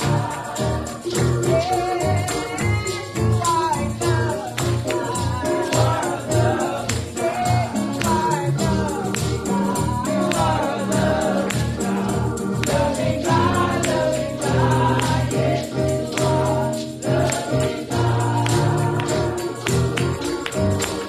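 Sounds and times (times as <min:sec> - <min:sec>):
band with bass line: 0:00.0 - 0:21.0
hands clapping on the beat: 0:00.0 - 0:21.0
tambourine: 0:00.0 - 0:21.0
voices singing gospel song: 0:00.0 - 0:21.0.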